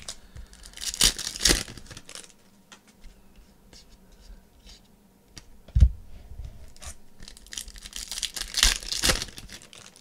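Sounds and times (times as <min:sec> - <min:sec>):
foil pack ripping: 0:00.0 - 0:02.4, 0:07.2 - 0:10.0.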